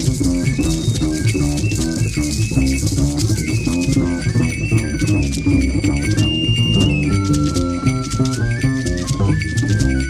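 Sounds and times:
high held wind notes: 0.0s - 10.0s
plucked double bass: 0.0s - 10.0s
shaken percussion rattles: 0.0s - 10.0s.

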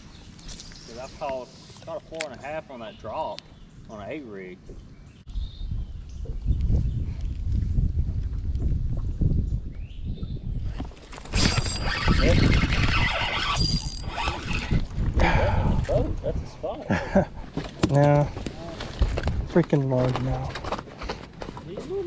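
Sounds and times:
fishing reel whirring: 11.3s - 14.8s.

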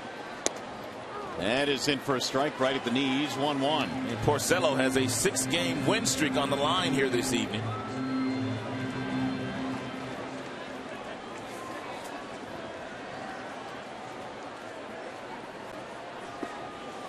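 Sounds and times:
crowd murmur: 1.0s - 17.0s
music with held low notes: 3.0s - 11.1s.

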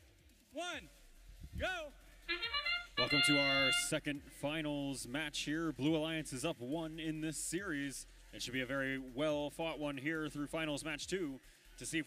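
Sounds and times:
countdown voice: 1.6s - 5.3s
horn-like chord: 2.3s - 4.1s.

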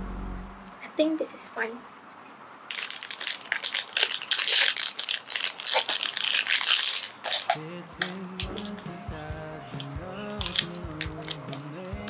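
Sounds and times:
plastic wrapping crinkling: 2.7s - 9.0s, 9.7s - 12.0s.

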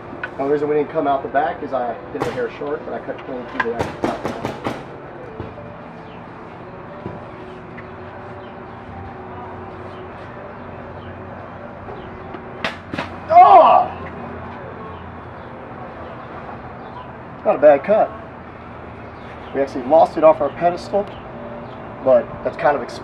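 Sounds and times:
person yelling: 13.2s - 14.0s.

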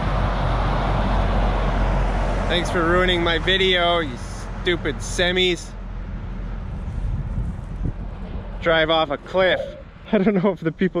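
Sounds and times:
trucks rumbling by on highway: 0.0s - 11.0s
wind buffeting microphone: 5.8s - 10.1s.

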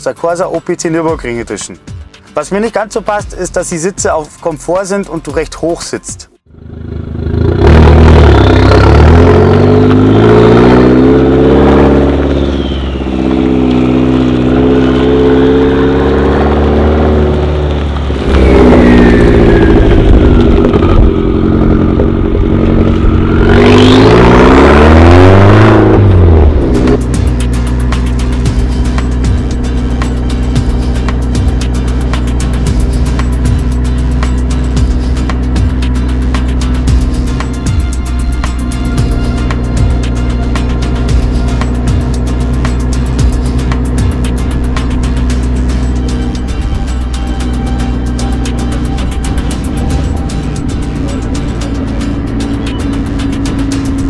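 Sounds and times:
music with steady beat: 0.0s - 6.4s, 26.2s - 54.0s
car engine revving: 6.4s - 54.0s.

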